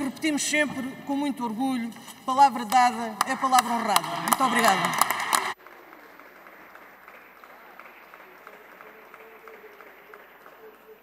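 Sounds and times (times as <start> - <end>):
audience applauding: 2.8 - 11.0.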